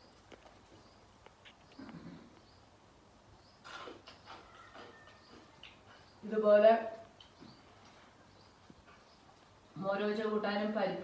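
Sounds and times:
mouth sounds of eating: 3.6 - 6.3
woman's voice: 9.8 - 11.0.

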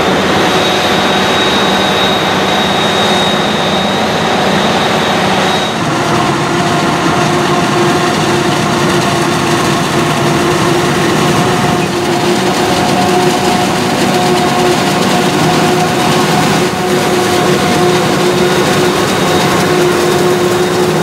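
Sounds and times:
steady even whine: 0.0 - 21.0
tractor diesel engine: 0.0 - 21.0
forage harvester chopping corn: 5.8 - 21.0.

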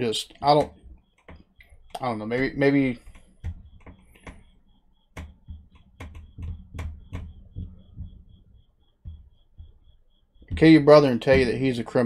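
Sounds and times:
faint high-pitched ticking: 0.0 - 12.0
computer mouse clicks and knocks: 0.5 - 8.2.

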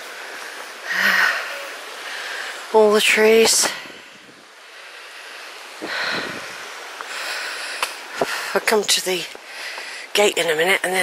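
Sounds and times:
stream flowing over stones: 0.0 - 11.0.

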